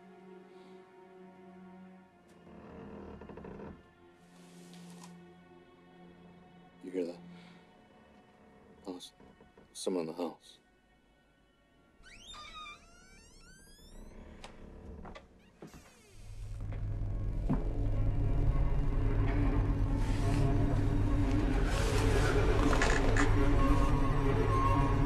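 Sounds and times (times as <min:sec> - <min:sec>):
eerie sliding tones: 0:16.0 - 0:25.0
low drone: 0:16.2 - 0:25.0.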